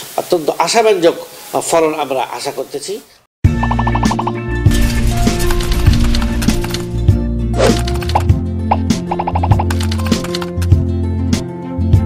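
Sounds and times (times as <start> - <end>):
outro jingle music: 3.5 - 10.5.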